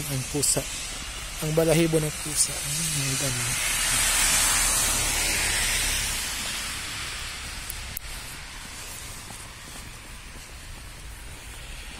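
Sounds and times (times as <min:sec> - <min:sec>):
microphone hiss outdoors: 0:00.0 - 0:11.9.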